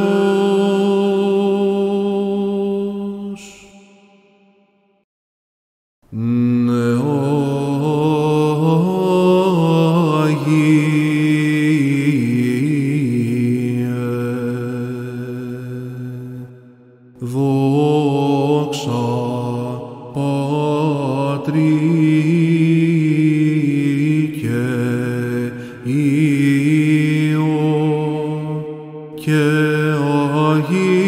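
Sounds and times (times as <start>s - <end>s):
held vocal drone: 0.0s - 4.1s, 6.1s - 16.6s, 17.2s - 31.0s.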